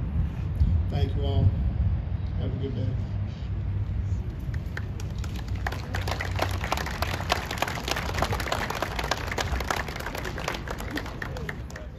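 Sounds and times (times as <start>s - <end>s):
low steady rumble: 0.0s - 11.9s
scattered applause: 4.5s - 11.9s.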